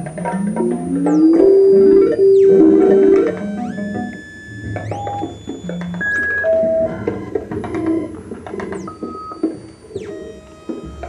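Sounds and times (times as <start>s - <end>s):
high tone gliding down: 0.0s - 5.8s
high steady electronic tones: 0.0s - 11.0s
scattered clicks: 0.0s - 11.0s
short electronic beeps: 0.4s - 8.2s.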